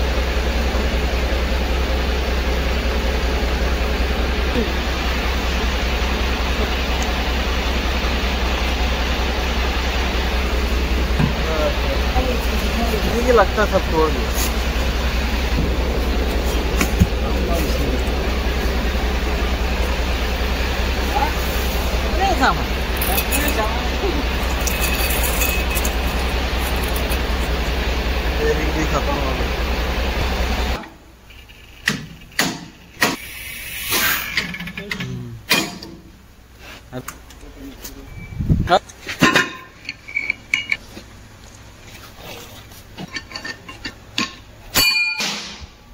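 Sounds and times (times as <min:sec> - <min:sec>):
loud machine hum: 0:00.0 - 0:35.3
metal parts clinking: 0:22.9 - 0:27.6, 0:39.2 - 0:40.8, 0:43.0 - 0:45.5.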